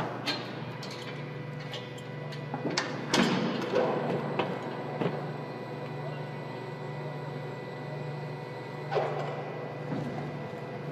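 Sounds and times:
low machinery hum: 0:00.0 - 0:10.9.

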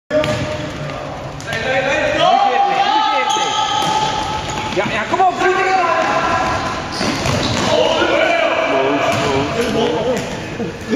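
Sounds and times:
players shouting: 0:01.5 - 0:09.6.

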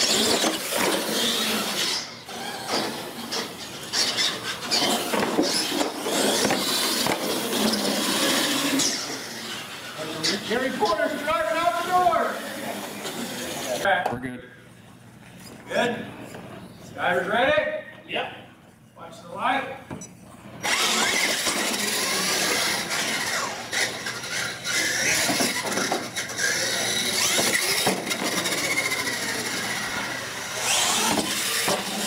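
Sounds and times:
toy truck motors whining: 0:00.0 - 0:13.8, 0:20.6 - 0:32.0
voices: 0:06.0 - 0:14.7.

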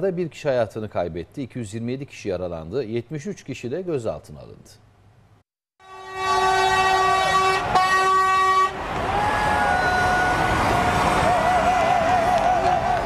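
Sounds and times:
lorry air horn blast: 0:05.8 - 0:08.8
outdoor crowd noise: 0:06.4 - 0:13.0.

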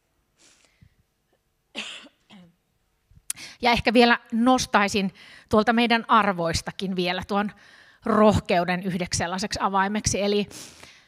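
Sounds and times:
person coughing: 0:01.8 - 0:02.6.

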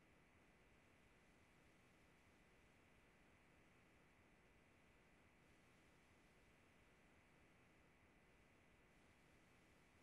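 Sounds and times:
faint steady background hiss: 0:00.0 - 0:10.0.

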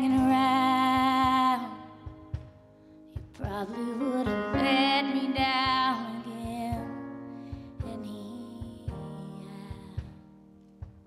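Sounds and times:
live country ballad: 0:00.0 - 0:11.0.

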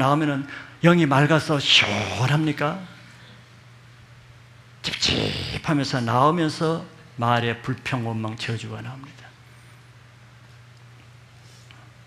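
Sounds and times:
man talking: 0:00.0 - 0:03.0, 0:04.8 - 0:09.3
low steady hum: 0:00.0 - 0:12.0.

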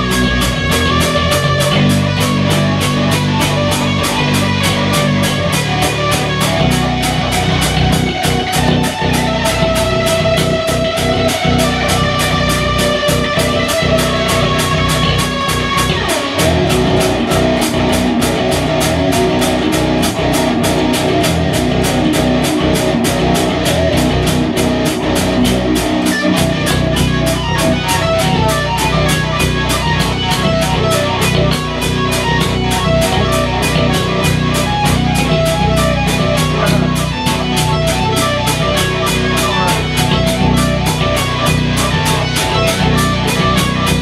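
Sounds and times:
electric bass riffs: 0:00.0 - 0:44.0
electric guitar riffs: 0:00.0 - 0:44.0
steady drum beat: 0:00.0 - 0:44.0.

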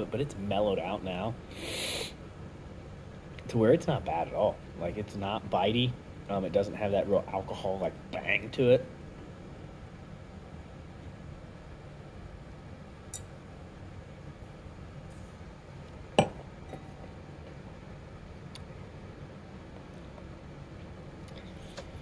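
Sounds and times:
steady low hum: 0:00.0 - 0:22.0
glass clinking on hard surface: 0:16.2 - 0:17.0.

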